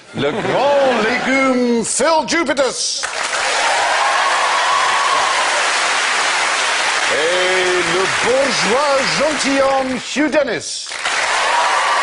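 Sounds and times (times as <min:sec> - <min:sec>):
audience applauding: 0:03.0 - 0:12.0.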